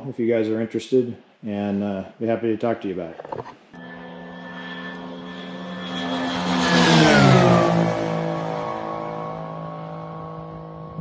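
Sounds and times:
light aircraft flying past: 3.7 - 11.0.

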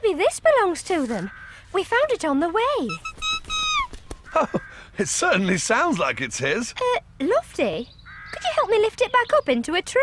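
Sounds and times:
cartoon bird whistle call: 2.9 - 4.0.

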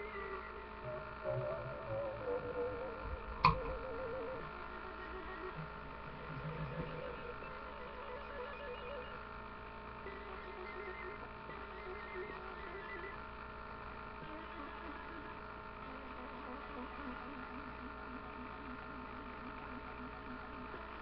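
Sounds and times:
electrical hum: 0.0 - 21.0.

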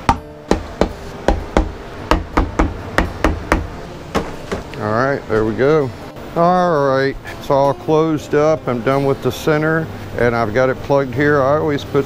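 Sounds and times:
rubber mallet knocking on metal: 0.0 - 4.6.

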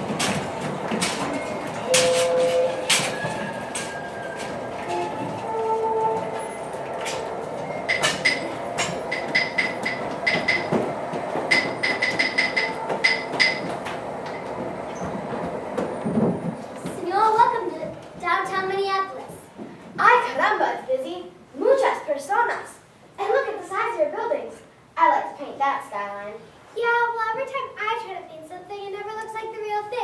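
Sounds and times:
steady background noise: 0.0 - 30.0
knocks: 7.0 - 17.0.

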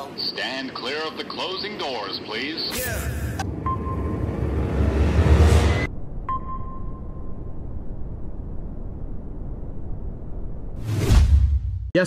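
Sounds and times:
subway train rumble: 3.4 - 5.9.

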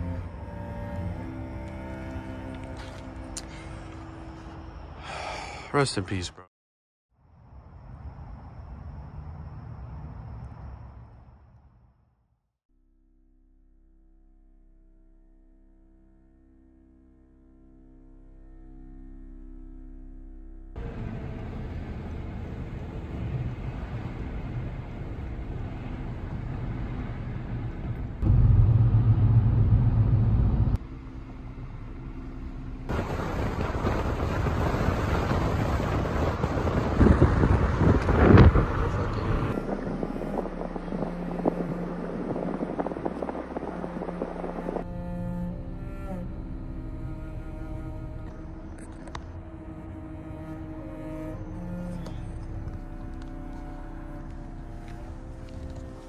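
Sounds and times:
road noise inside moving car: 20.8 - 56.0.

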